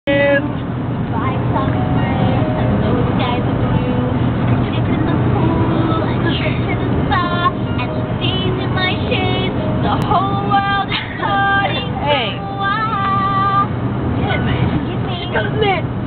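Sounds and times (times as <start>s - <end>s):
road rumble inside car: 0.1s - 16.0s
music: 5.4s - 10.9s.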